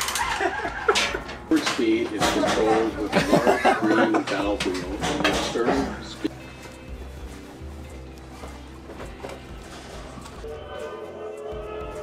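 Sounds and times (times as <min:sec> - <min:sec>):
quiet background music: 0:00.0 - 0:12.0
man's voice: 0:01.5 - 0:06.3.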